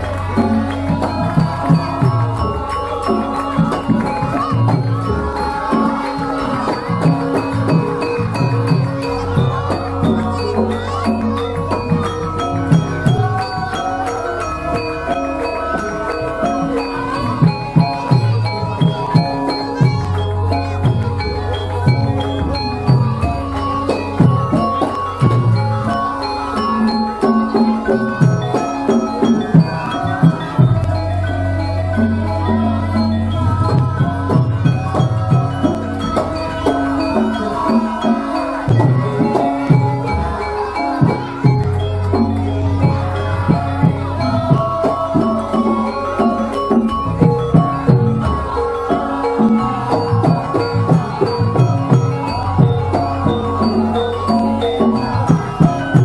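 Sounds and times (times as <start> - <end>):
metallophones ringing struck notes: 0.0 - 56.0.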